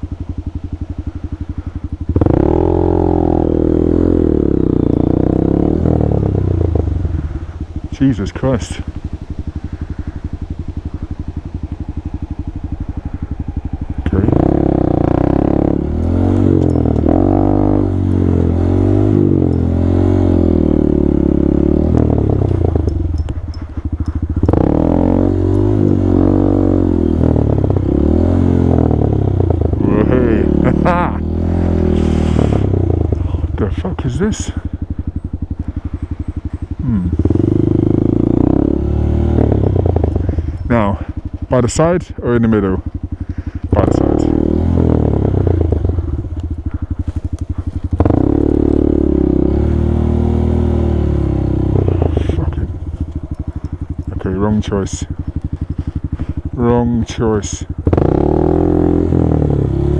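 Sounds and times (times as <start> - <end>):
motorcycle engine revving: 0.0 - 59.9.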